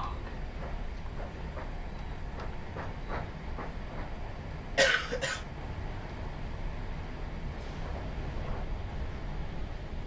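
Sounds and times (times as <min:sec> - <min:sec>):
train cabin rumble: 0:00.0 - 0:10.0.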